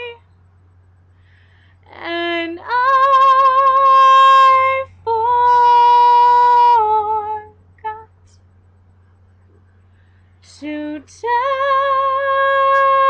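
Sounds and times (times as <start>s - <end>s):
woman singing a cappella: 0.0s - 0.2s, 1.9s - 8.4s, 10.4s - 13.0s.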